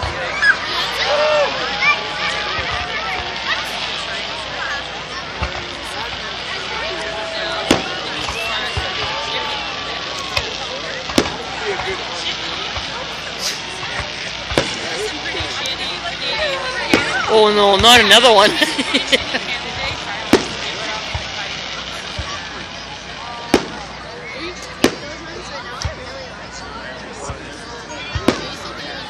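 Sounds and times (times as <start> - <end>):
fireworks bangs: 0.0 - 26.2, 27.2 - 29.0
crowd talking and calling out: 0.0 - 29.0.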